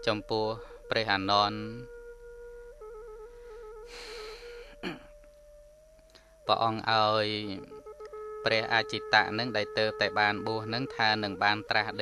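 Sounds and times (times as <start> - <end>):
held melody with trills: 0.0 - 12.0
soft breath drawn: 0.6 - 0.9, 3.2 - 4.8.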